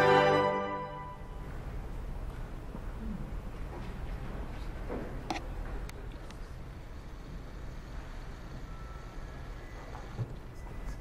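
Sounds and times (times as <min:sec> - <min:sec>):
low room rumble: 0:00.0 - 0:11.0
faint brief tone: 0:08.4 - 0:11.0.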